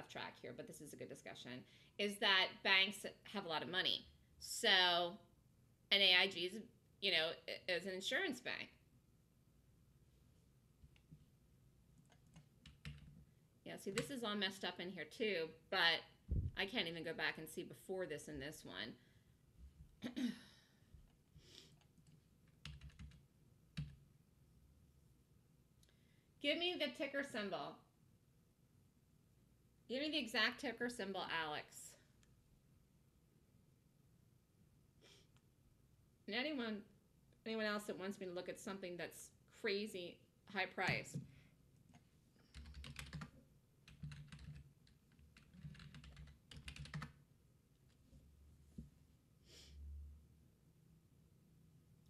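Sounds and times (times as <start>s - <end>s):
computer keyboard typing: 12.0s - 13.2s, 13.9s - 14.1s, 21.8s - 23.2s, 23.8s - 24.0s, 42.5s - 47.2s.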